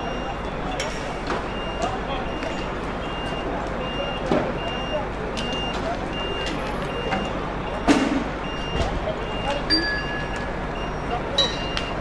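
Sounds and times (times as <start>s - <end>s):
crowd noise: 0.0s - 12.0s
reversing alarm beeping: 0.0s - 12.0s.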